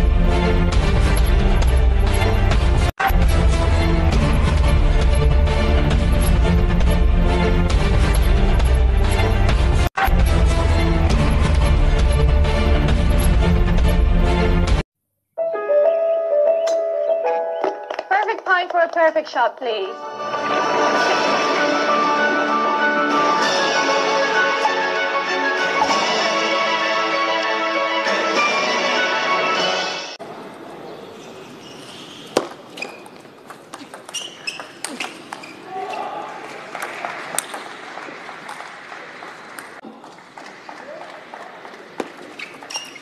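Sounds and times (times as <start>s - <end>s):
music: 0.0s - 14.8s, 15.4s - 30.2s
light instrumental music: 15.4s - 18.4s
large hall ambience: 15.6s - 43.0s
woman speaking: 18.1s - 20.0s.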